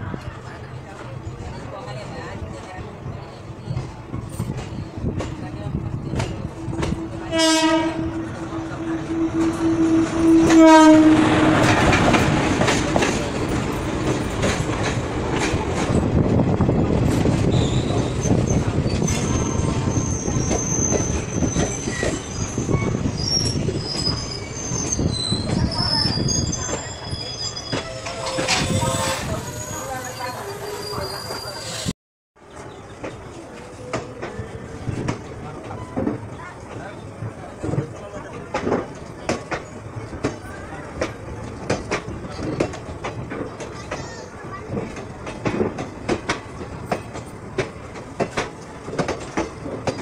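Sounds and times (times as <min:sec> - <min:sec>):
train wheels rumbling on rails: 0:00.0 - 0:50.0
high-pitched wheel squeals: 0:06.0 - 0:11.4, 0:17.5 - 0:31.9.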